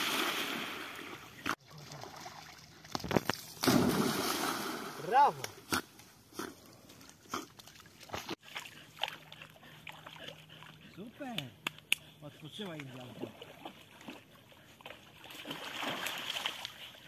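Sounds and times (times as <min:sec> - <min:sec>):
water splashing loudly: 0:00.0 - 0:01.1, 0:03.6 - 0:05.3, 0:15.4 - 0:16.6.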